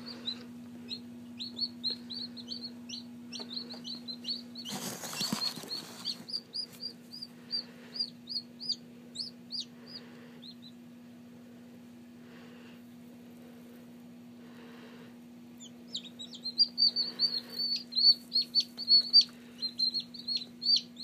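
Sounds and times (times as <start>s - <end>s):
chicks peeping: 0.0s - 10.9s, 15.6s - 21.0s
steady low hum: 0.0s - 21.0s.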